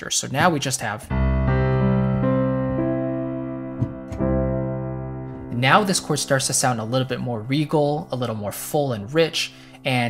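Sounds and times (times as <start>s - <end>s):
piano chord ringing: 1.1s - 10.0s.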